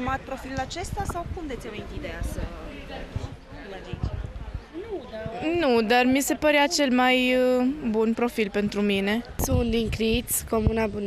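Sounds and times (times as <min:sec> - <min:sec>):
people talking in background: 0:00.0 - 0:11.0
low thumps on microphone: 0:00.5 - 0:05.6, 0:09.3 - 0:11.0.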